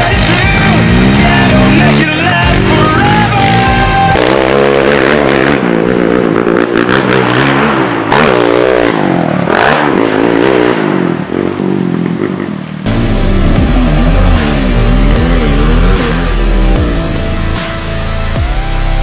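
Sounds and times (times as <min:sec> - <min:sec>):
loud music: 0:00.0 - 0:05.7, 0:12.9 - 0:19.0
quad bike engine revving: 0:00.0 - 0:19.0.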